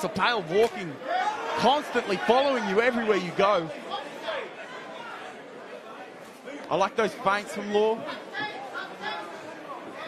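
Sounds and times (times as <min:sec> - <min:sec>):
crowd chatter in a large hall: 0:00.0 - 0:10.0.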